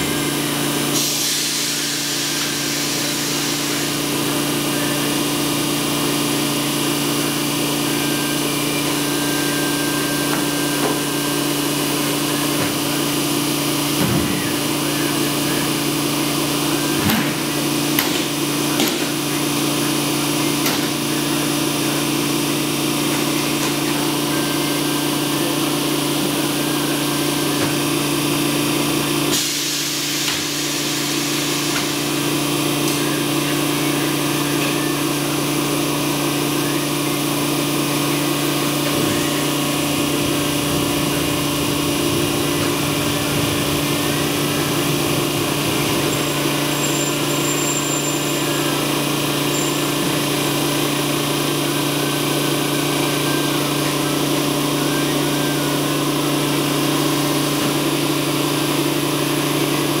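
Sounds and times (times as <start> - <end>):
press motor hum: 34.4 - 50.2.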